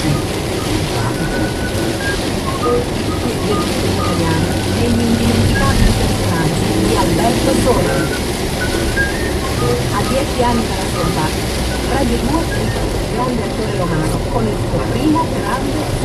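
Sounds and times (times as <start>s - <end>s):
car radio voices and music: 0.0s - 16.0s
engine and tyre rumble: 0.0s - 16.0s.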